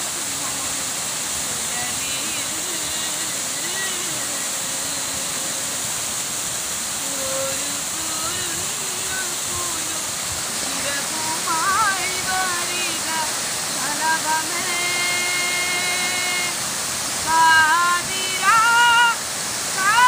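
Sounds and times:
woman singing unaccompanied: 0.0s - 6.1s, 6.8s - 20.0s
waterfall rushing: 0.0s - 20.0s.

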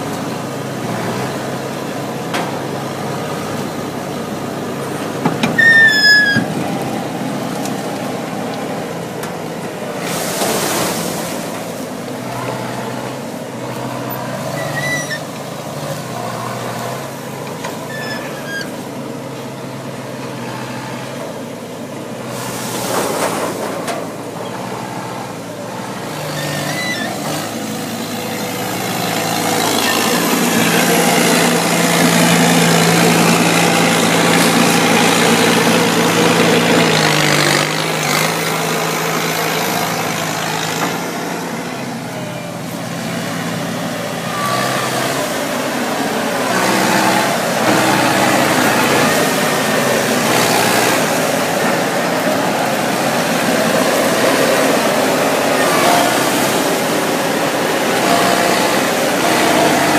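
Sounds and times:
harvester engine running: 0.0s - 59.9s.

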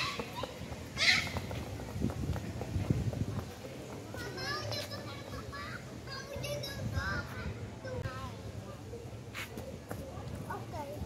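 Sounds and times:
children shouting and calling: 0.0s - 1.8s, 4.1s - 8.5s.

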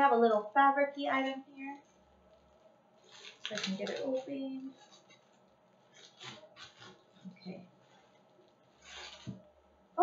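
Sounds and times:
fabric and packaging rustling: 1.6s - 9.6s.

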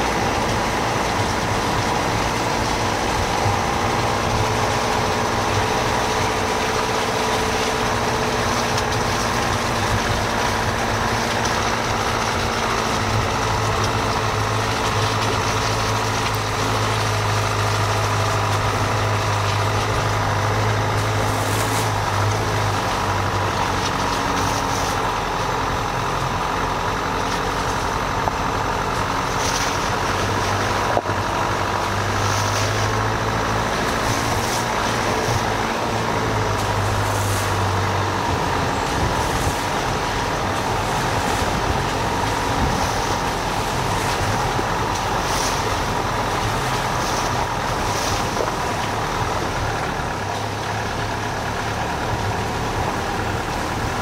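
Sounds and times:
car engine running: 0.0s - 54.0s
road noise: 0.0s - 54.0s.

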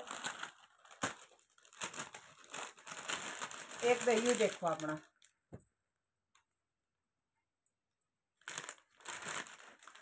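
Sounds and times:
fabric rustling and crinkling: 0.0s - 5.6s, 8.4s - 10.0s.

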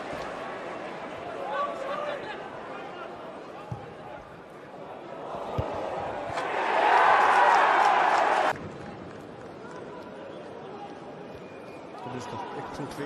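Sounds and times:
stadium crowd roaring: 0.0s - 8.6s.

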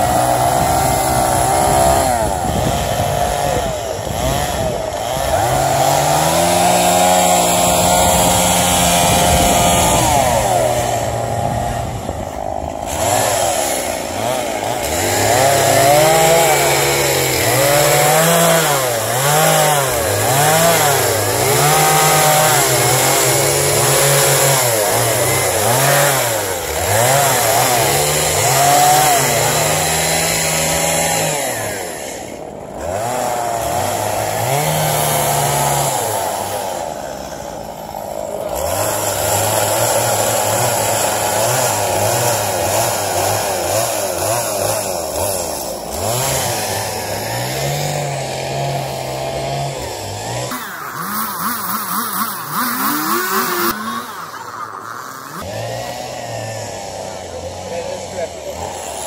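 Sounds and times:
chainsaw cutting wood: 0.0s - 59.0s.

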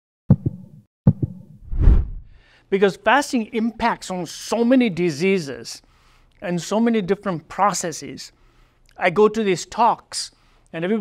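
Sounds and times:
heartbeat thumps: 0.3s - 2.3s
rising whoosh: 1.6s - 2.4s
deep rumble: 1.7s - 2.4s.

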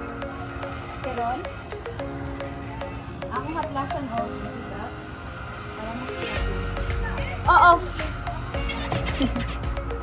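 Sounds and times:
faint voices: 0.0s - 9.4s
background music: 0.0s - 10.0s
steady low rumble: 0.0s - 10.0s.

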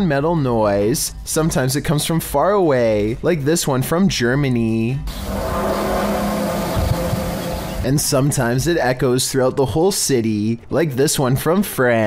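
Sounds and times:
rushing hiss: 5.1s - 8.0s
distant humming drone: 5.1s - 8.1s.

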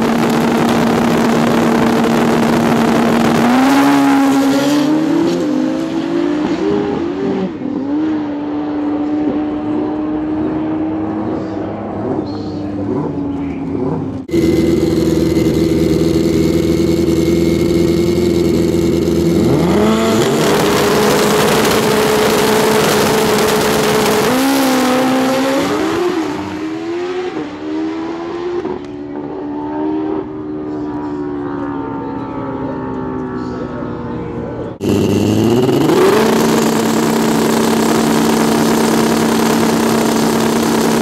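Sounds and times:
drag motorcycles revving: 0.0s - 41.0s
motorcycles shifting gears: 0.0s - 41.0s.

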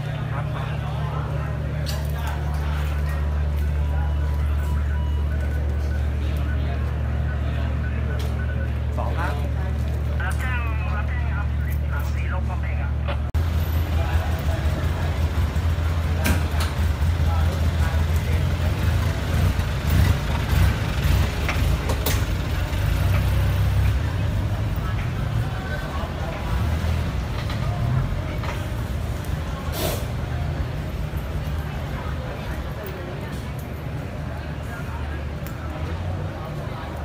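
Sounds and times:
faint street voices: 0.0s - 37.0s
large vehicle engine rumbling: 0.0s - 37.0s.

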